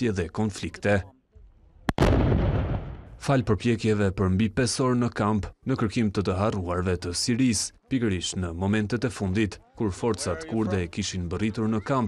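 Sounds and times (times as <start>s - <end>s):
explosion blast: 1.9s - 3.2s.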